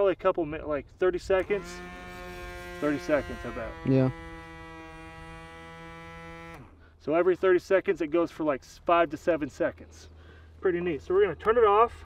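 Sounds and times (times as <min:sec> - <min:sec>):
electric motor humming: 0:01.3 - 0:06.8.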